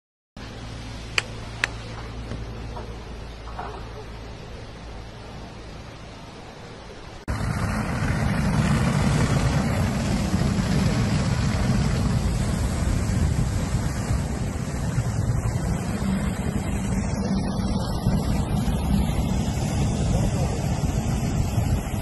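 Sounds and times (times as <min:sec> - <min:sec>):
fire hose water jet rushing: 0:07.3 - 0:22.0.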